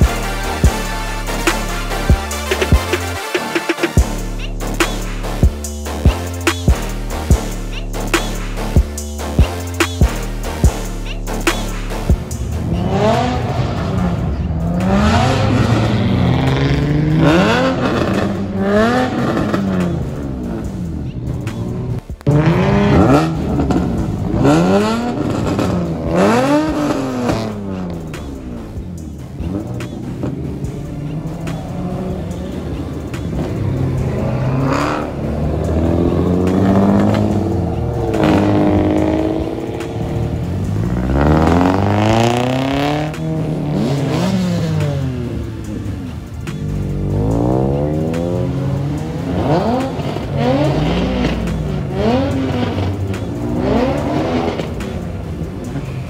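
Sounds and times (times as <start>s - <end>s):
car engines revving and accelerating: 0.0s - 56.0s.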